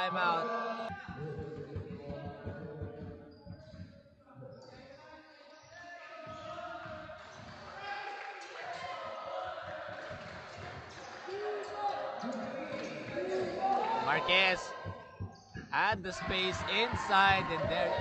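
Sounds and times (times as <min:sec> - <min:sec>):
voices in gym: 0:00.0 - 0:18.0.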